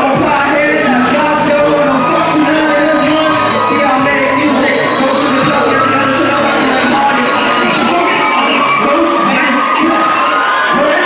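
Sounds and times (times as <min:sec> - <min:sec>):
music with singing: 0:00.0 - 0:11.0.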